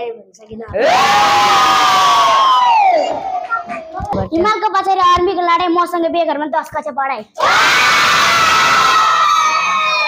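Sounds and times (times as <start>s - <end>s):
children cheering: 7.4s - 10.0s.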